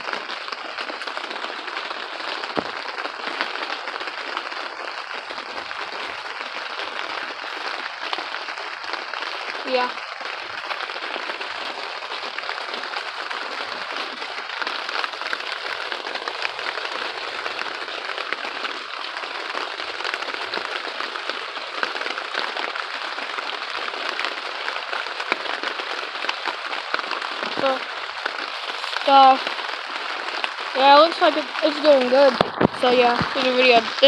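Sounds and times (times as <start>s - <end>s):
rain pattering on plastic: 0.0s - 34.0s.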